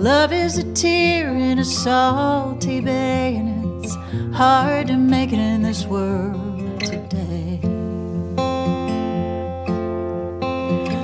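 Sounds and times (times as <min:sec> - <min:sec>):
two acoustic guitars playing: 0:00.0 - 0:11.0.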